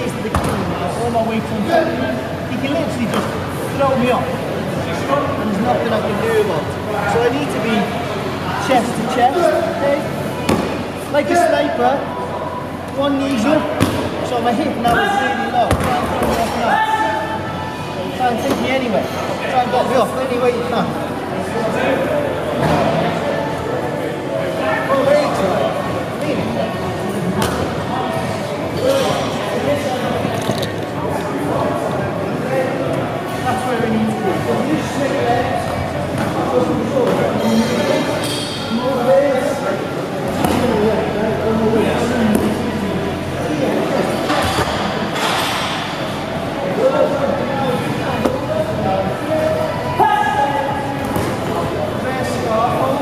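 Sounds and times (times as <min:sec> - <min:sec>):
indistinct voices echoing in hall: 0:00.0 - 0:53.0.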